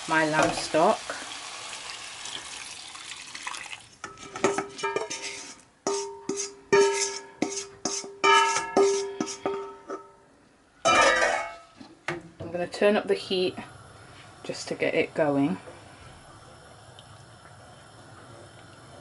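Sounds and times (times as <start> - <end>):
vegetables hissing in pan: 0.0 - 2.6, 5.0 - 5.6
stock pouring into pan: 0.2 - 5.6.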